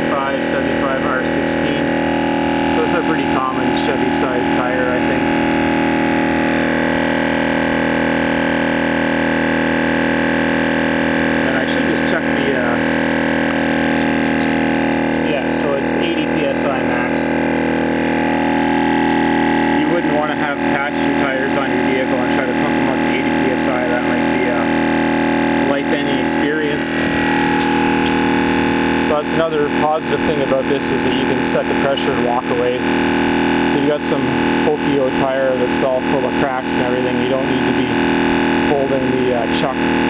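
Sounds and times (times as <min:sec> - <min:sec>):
indistinct talking: 0:00.0 - 0:05.7, 0:11.2 - 0:32.8
tire inflator running: 0:00.0 - 0:40.0.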